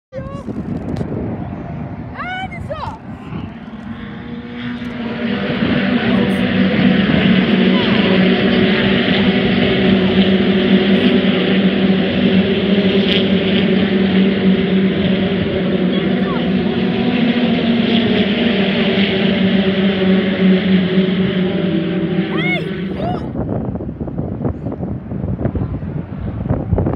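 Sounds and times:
racing car engines droning: 0:00.2 - 0:26.9.

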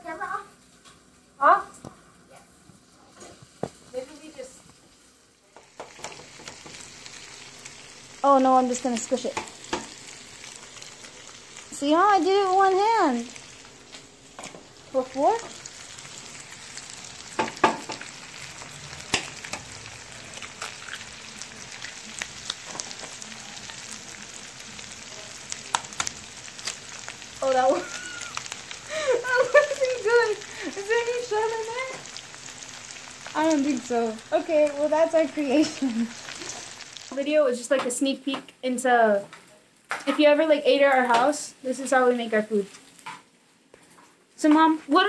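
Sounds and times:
food sizzling in oil: 0:00.0 - 0:43.5.

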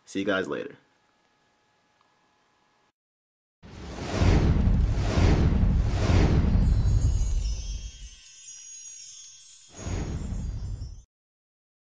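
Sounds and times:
deep rushing whoosh: 0:03.7 - 0:07.8
high ringing chime tones: 0:06.4 - 0:11.1.

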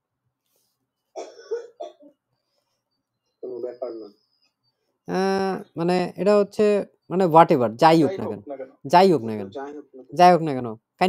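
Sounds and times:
person coughing: 0:01.2 - 0:02.1.

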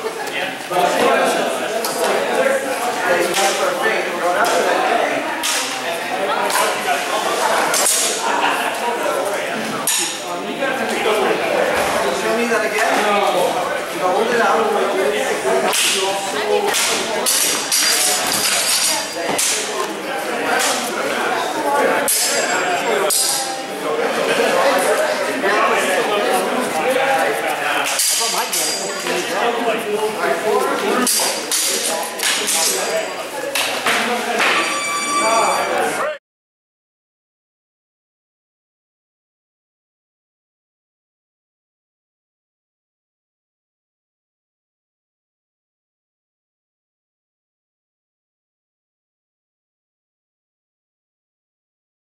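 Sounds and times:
murmur of voices: 0:00.0 - 0:36.2
metal blades clashing: 0:27.9 - 0:29.1.

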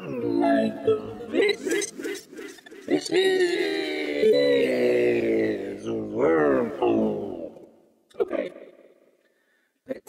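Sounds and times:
vocoded synth voice sliding in pitch: 0:00.0 - 0:07.7.

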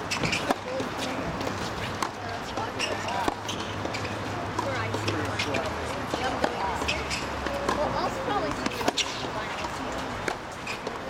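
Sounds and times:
tennis ball bouncing on court: 0:00.0 - 0:11.0
tennis ball struck by racket: 0:00.1 - 0:11.0.

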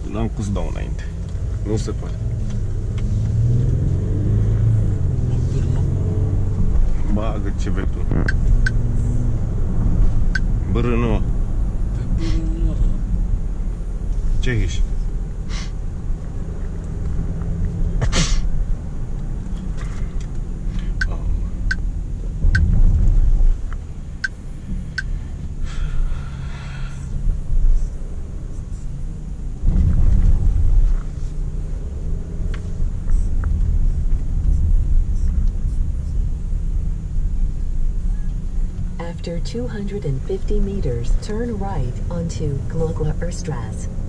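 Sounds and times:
car engine and road rumble: 0:00.0 - 0:44.0
turn indicator ticking: 0:08.1 - 0:09.0, 0:10.2 - 0:10.6, 0:20.2 - 0:21.9, 0:22.5 - 0:22.8, 0:23.7 - 0:25.1.

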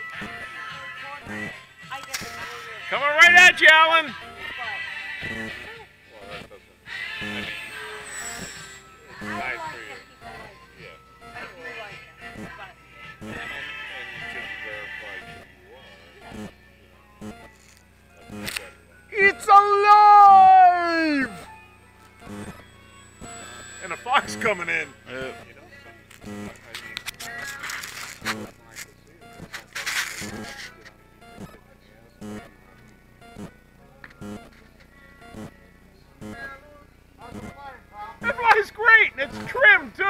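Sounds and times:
faint voices: 0:00.0 - 0:21.5, 0:22.2 - 0:40.0
man speaking: 0:18.4 - 0:21.4, 0:23.8 - 0:25.7, 0:38.2 - 0:40.0
people's vocal exclamations: 0:19.2 - 0:21.4.

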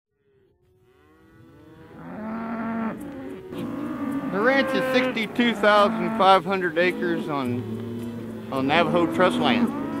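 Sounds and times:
cattle mooing: 0:00.2 - 0:10.0.

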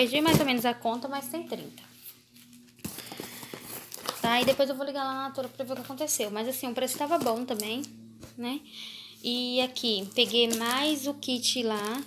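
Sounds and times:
boxes knocking and rustling: 0:02.8 - 0:06.1, 0:06.8 - 0:07.6.

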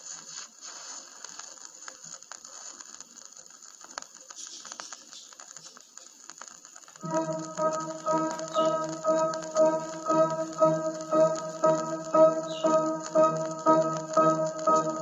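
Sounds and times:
vinyl surface hiss and crackles: 0:00.0 - 0:15.0
sustained pitched notes: 0:07.0 - 0:15.0.

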